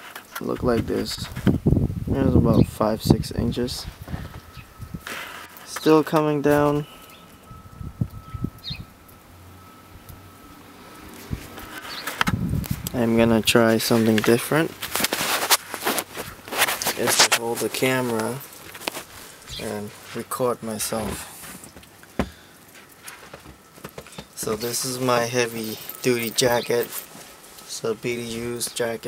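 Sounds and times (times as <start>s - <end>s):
small bird chirp: 8.2s - 8.9s
microphone handling thumps: 21.0s - 22.4s.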